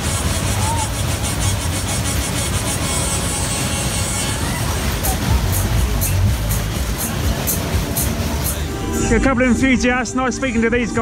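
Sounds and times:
loud fairground ride music: 0.0 - 11.0
rumble of spinning ride cars: 0.0 - 11.0.

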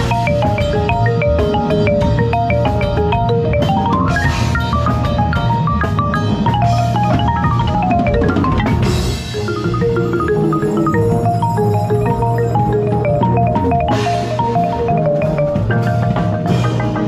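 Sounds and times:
low ensemble backing: 0.0 - 17.0
marimba fast runs: 0.0 - 17.0.

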